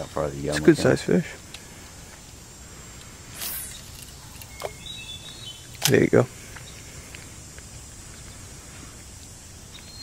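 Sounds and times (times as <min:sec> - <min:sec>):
person speaking: 0:00.3 - 0:01.3
faint high chirp: 0:03.4 - 0:05.7, 0:09.7 - 0:10.0.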